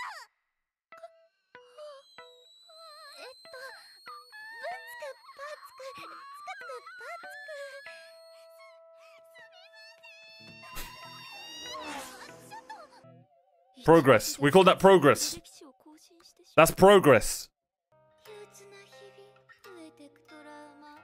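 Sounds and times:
music: 0.9s - 17.2s, 17.9s - 21.0s.

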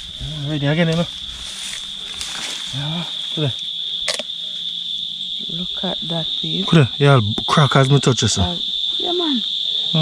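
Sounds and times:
insects chirring: 0.0s - 10.0s
man speaking: 5.5s - 8.6s.

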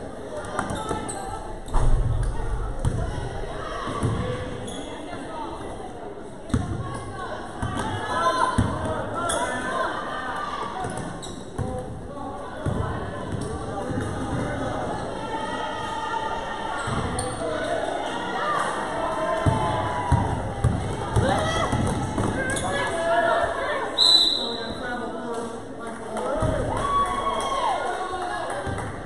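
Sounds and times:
voices of players and spectators: 0.0s - 29.0s.

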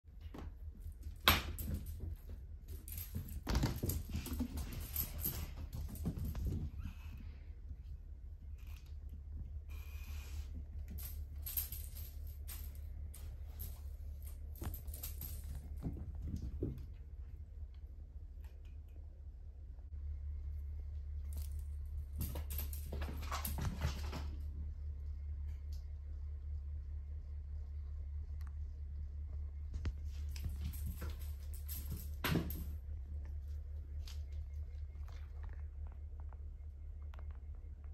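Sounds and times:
steady low hum: 0.0s - 37.9s.

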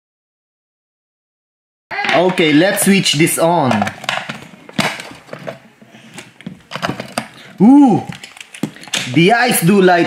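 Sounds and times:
plastic toy clicks and knocks: 2.0s - 5.6s.

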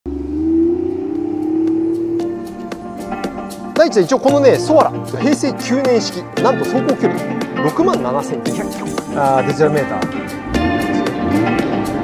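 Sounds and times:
car engine driving off: 0.1s - 3.8s, 10.3s - 12.0s.

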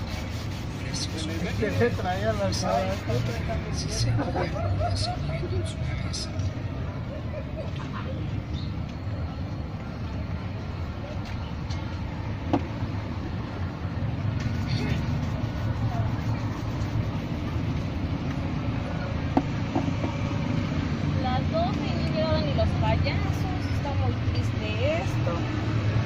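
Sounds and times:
cloth rubbing leather shoes: 0.0s - 3.6s, 14.4s - 18.0s
brush on leather shoes: 0.0s - 4.4s, 14.4s - 18.0s
street traffic rumble: 0.0s - 26.0s.

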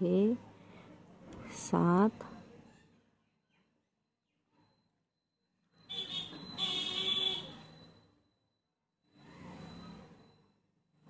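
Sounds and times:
shrill buzzer tone: 5.7s - 8.2s.

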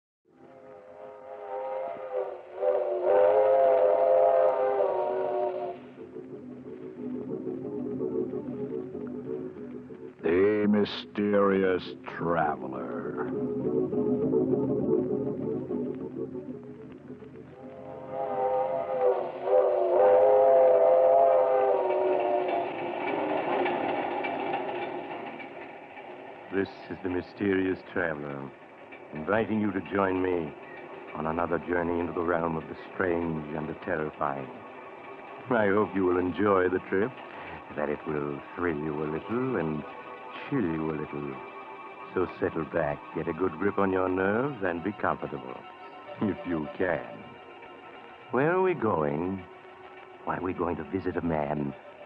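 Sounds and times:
steam locomotive whistle: 0.4s - 6.0s, 17.6s - 23.8s
moving train clatter: 0.6s - 52.0s.

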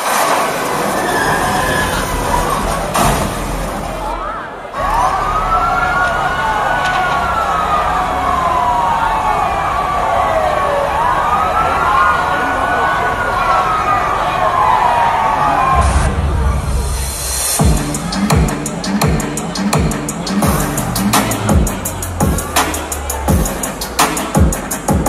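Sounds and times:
crowd noise: 0.0s - 25.0s
siren-like wail over loudspeakers: 4.8s - 16.4s.

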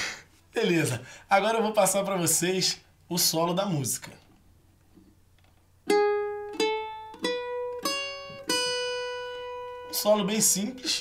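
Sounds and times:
plucked cavaquinho notes: 5.8s - 11.0s.

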